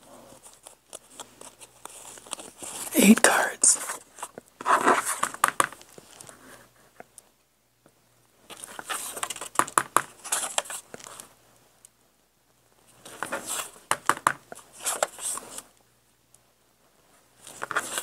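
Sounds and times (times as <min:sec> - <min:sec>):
paper rustling: 0:00.2 - 0:03.2, 0:03.8 - 0:06.8, 0:08.5 - 0:11.3, 0:13.0 - 0:13.9, 0:14.5 - 0:15.7, 0:17.4 - 0:18.0.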